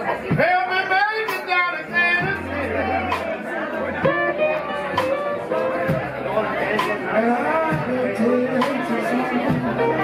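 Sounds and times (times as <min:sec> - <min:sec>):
live blues band: 0:00.0 - 0:10.0
man singing: 0:00.3 - 0:02.6, 0:06.4 - 0:10.0
drums striking: 0:01.2 - 0:10.0.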